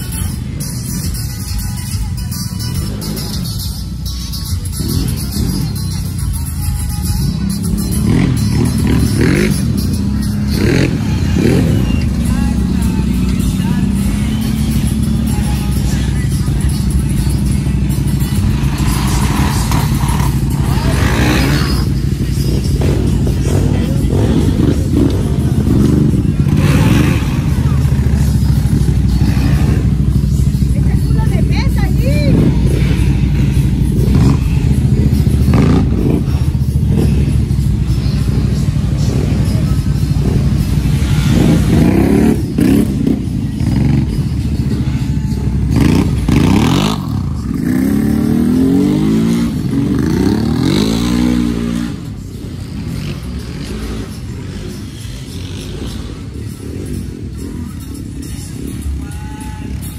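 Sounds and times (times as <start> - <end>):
vehicle engine revving: 4.4 - 59.2.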